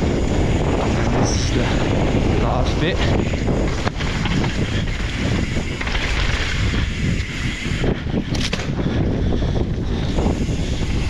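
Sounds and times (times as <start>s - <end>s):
tyres rumbling on dirt: 0.0s - 7.8s
bike rattling over bumps: 0.0s - 11.0s
wind buffeting microphone: 0.0s - 11.0s.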